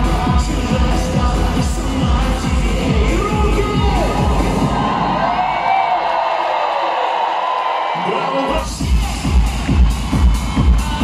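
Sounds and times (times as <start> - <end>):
live pop band through pa: 0.0 - 5.2
crowd cheering and whooping: 4.0 - 11.0.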